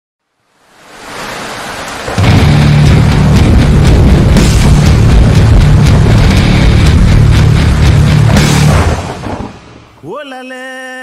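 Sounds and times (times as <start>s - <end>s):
static-like hiss: 0.3s - 10.1s.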